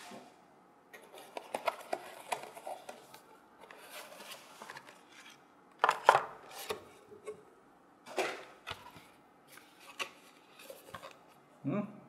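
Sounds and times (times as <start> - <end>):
paper rustling: 1.0 - 5.4.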